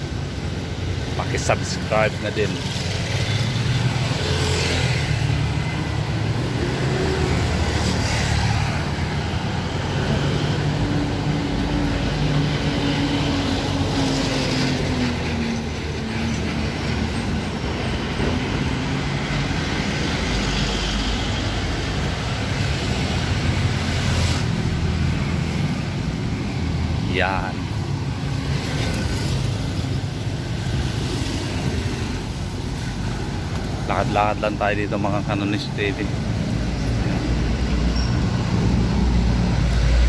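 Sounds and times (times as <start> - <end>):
traffic rumble: 0.0 - 40.0.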